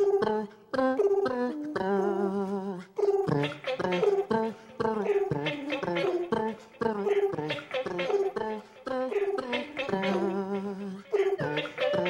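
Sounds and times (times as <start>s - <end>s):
a cappella group singing: 0.0s - 12.0s.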